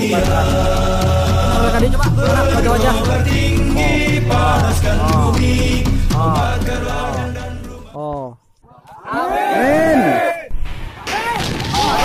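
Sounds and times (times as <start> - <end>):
men shouting: 0.0 - 8.0, 8.7 - 10.5.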